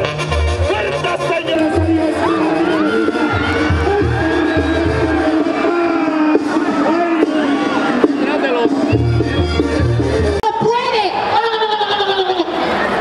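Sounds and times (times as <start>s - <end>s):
brass band playing: 0.0s - 10.5s
crowd noise: 0.0s - 13.0s.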